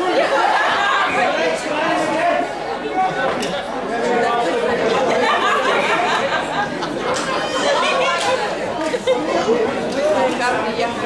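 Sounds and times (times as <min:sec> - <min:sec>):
overlapping voices chatter: 0:00.0 - 0:11.0.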